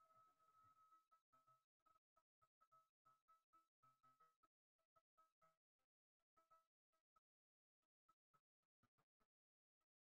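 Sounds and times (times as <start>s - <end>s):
choppy steady tone: 0.0s - 10.0s.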